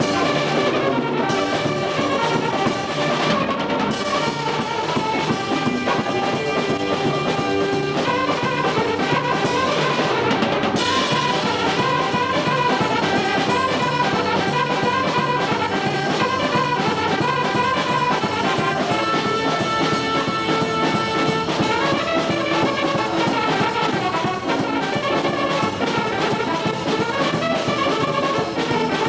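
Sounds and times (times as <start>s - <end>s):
built-in drum accompaniment: 0.0s - 29.0s.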